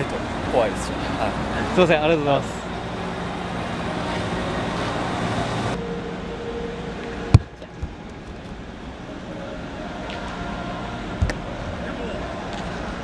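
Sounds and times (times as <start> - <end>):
ballpark hum: 0.0 - 13.0.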